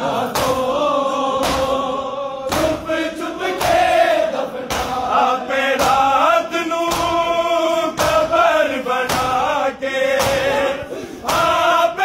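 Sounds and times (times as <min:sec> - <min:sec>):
men chanting in unison: 0:00.0 - 0:12.0
hands striking chests: 0:10.2 - 0:11.6.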